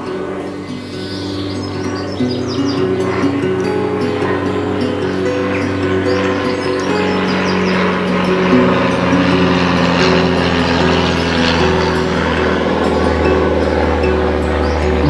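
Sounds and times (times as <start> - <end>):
acoustic tenor guitar strummed: 0.0 - 15.0
low hum: 0.0 - 15.0.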